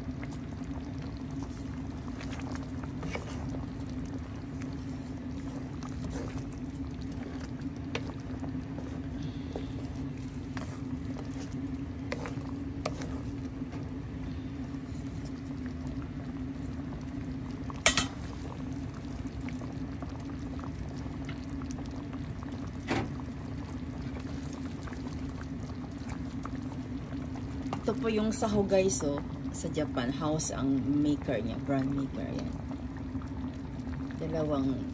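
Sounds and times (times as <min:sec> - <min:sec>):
low hum: 0:00.0 - 0:34.9
stew bubbling in a pan: 0:00.0 - 0:34.9.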